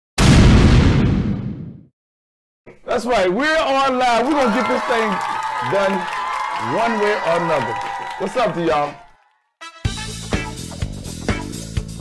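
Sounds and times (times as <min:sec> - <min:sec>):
explosion-like boom: 0:00.2 - 0:01.9.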